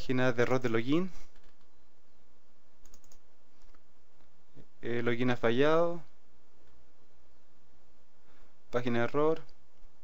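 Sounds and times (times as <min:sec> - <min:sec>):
low background hiss: 0:00.0 - 0:10.0
computer mouse clicks: 0:02.8 - 0:04.3.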